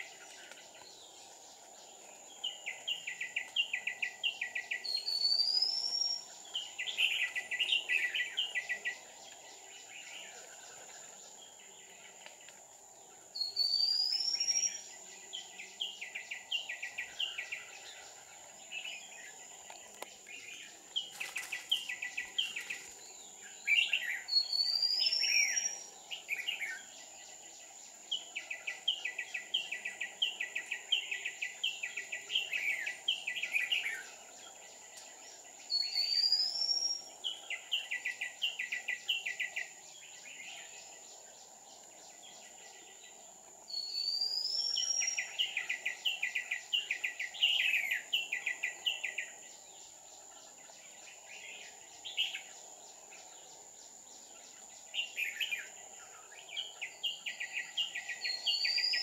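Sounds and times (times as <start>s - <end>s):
bird singing: 0.0s - 59.0s.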